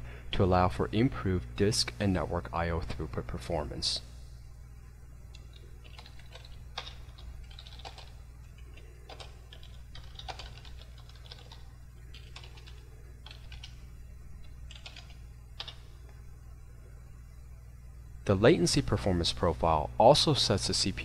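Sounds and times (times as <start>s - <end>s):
steady low hum: 0.0s - 21.0s
typing on computer keyboard: 5.3s - 13.8s, 14.7s - 15.8s.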